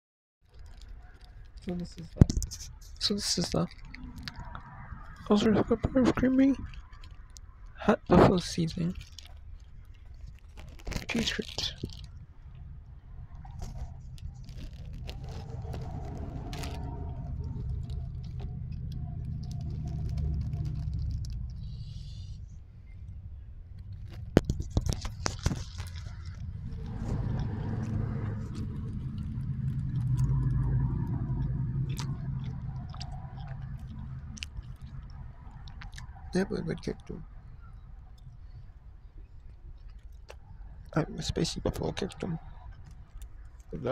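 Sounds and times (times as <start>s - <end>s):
person chewing: 8.8s - 12.2s, 13.3s - 22.3s, 23.9s - 37.2s, 39.2s - 40.4s.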